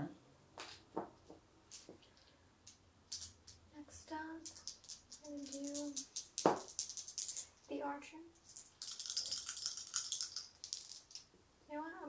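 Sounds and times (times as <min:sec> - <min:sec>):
dice rattling in a hand: 0:01.7 - 0:03.7, 0:04.4 - 0:07.7, 0:08.4 - 0:11.3.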